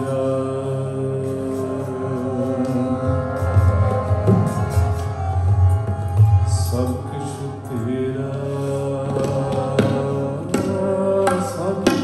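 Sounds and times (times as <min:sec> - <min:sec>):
harmonium chords: 0:00.0 - 0:12.0
man singing: 0:00.0 - 0:12.0
tabla stroke: 0:08.4 - 0:12.0.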